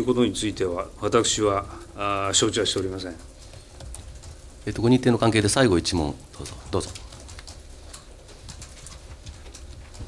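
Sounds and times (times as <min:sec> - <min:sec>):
low steady hum: 0:00.0 - 0:10.0
rustling: 0:01.1 - 0:10.0.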